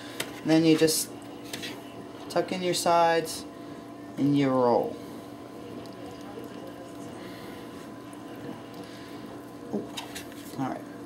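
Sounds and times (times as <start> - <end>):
kitchen hum: 0.0 - 11.0.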